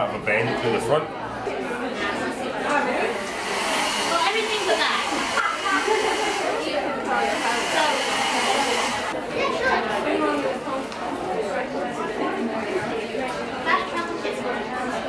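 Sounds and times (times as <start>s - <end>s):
people chattering: 0.0s - 15.0s
hair dryer running: 3.0s - 9.2s.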